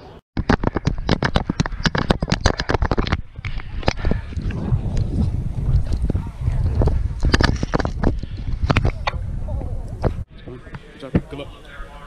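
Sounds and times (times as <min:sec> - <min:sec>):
wind buffeting microphone: 0:00.7 - 0:12.0.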